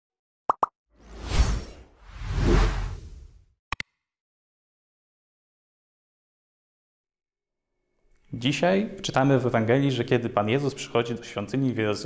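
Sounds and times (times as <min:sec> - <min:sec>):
long whooshes: 0:01.0 - 0:03.4.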